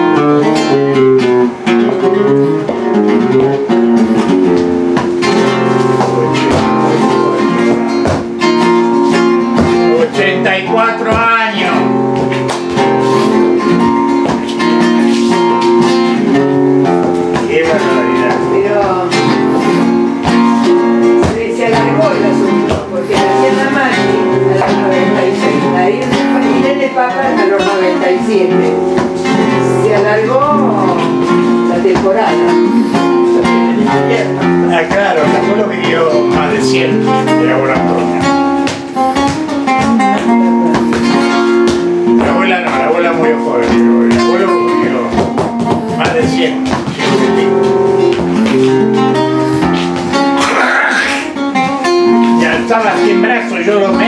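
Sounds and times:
flamenco guitar: 0.0 - 54.0.

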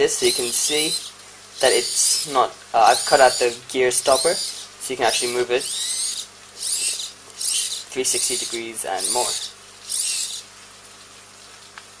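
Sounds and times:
servo gear whir: 3.0 - 10.4.

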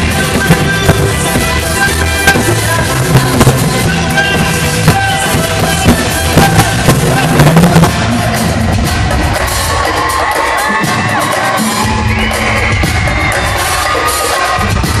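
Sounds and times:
heavy drum hits: 0.0 - 9.8
crowd cheering and whooping: 0.0 - 15.0
loud pop concert music: 0.0 - 15.0.

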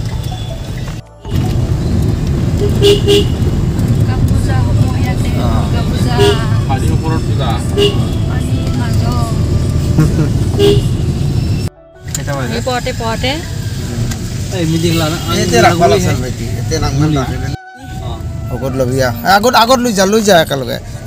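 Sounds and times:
traffic rumble: 0.0 - 21.0
car horn toots: 0.2 - 3.6, 5.9 - 9.0, 10.5 - 11.6
voices: 4.0 - 10.7, 12.2 - 20.8.

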